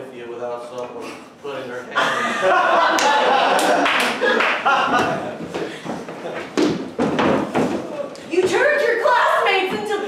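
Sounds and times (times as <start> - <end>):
audience applauding: 2.8 - 5.2.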